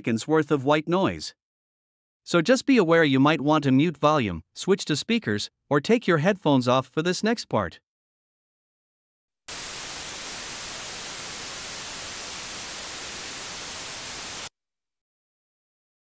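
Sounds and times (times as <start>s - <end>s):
white noise: 9.5s - 14.5s.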